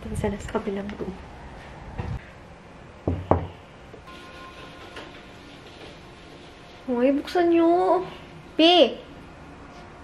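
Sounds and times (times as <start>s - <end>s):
knocks on door: 3.1s - 3.6s.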